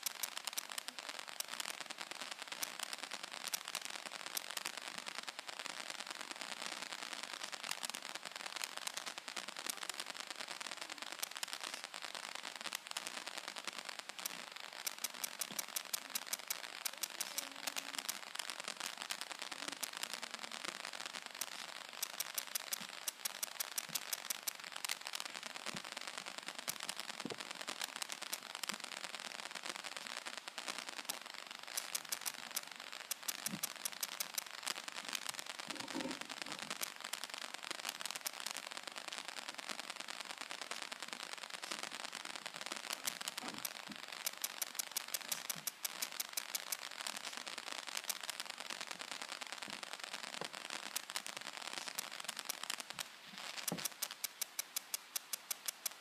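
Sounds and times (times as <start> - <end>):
sharp clicks: 0.0 - 1.6, 2.6 - 4.7, 14.1 - 19.2, 21.2 - 25.4, 31.0 - 37.0, 42.8 - 48.4, 50.8 - 56.0
dense crackling and rustling: 0.0 - 56.0.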